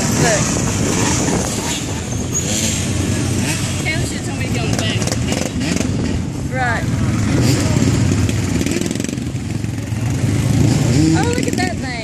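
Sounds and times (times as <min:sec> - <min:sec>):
dirt bike and atv engines rumbling: 0:00.0 - 0:12.0.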